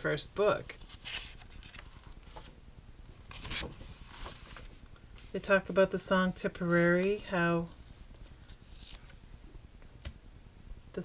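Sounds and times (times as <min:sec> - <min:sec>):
hand rustling paper page: 0:00.8 - 0:02.5, 0:03.3 - 0:05.5.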